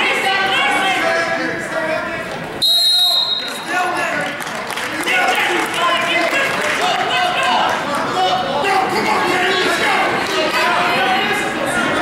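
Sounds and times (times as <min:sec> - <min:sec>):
referee's whistle blast: 0:02.6 - 0:03.6
spectators and coaches shouting: 0:05.0 - 0:12.0.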